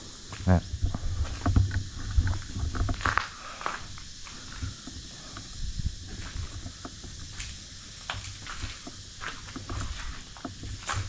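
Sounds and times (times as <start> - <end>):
footsteps over debris: 6.0 - 11.0.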